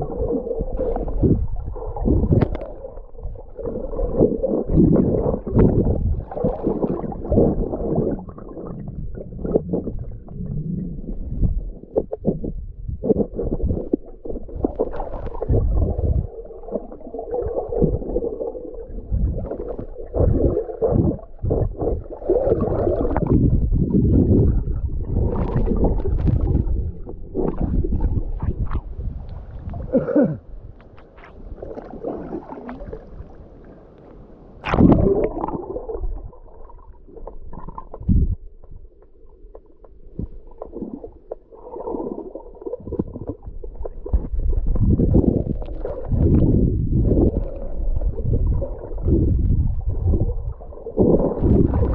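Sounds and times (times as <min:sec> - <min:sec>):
muffled underwater gurgling: 0:00.0 - 0:33.8, 0:34.6 - 0:51.9.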